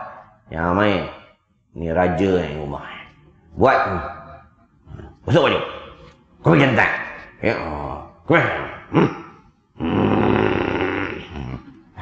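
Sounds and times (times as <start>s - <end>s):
man grunting: 8.4s - 11.7s
man growling like a bear: 8.5s - 12.0s.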